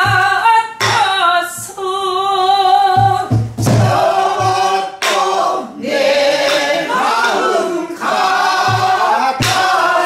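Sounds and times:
woman singing folk song: 0:00.0 - 0:03.5
barrel drum strokes: 0:03.0 - 0:05.2, 0:06.4 - 0:10.0.

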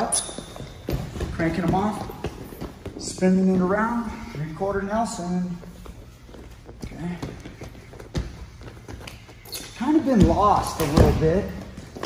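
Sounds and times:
footsteps on foam mat: 0:00.0 - 0:12.0.

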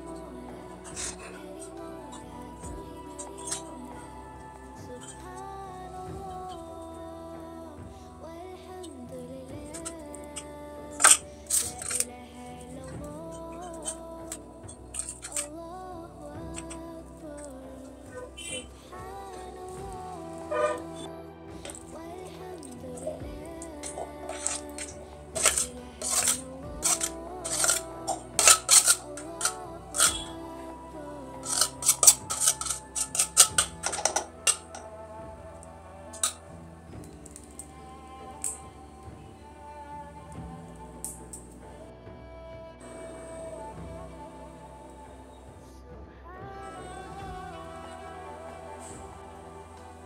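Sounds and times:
background music: 0:00.0 - 0:50.0
cutlery scraping a steel plate: 0:23.9 - 0:30.2.

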